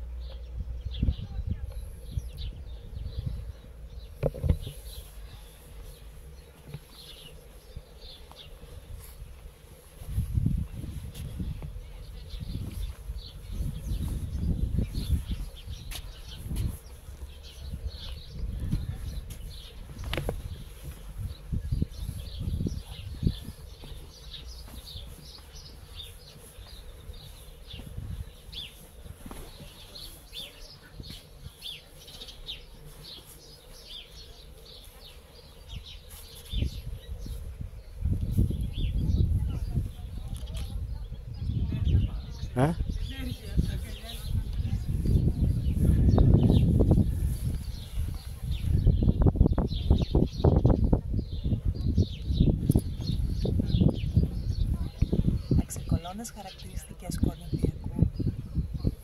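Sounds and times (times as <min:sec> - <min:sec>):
small birds chirping: 0:00.0 - 0:59.0
wind buffeting microphone: 0:00.0 - 0:59.0.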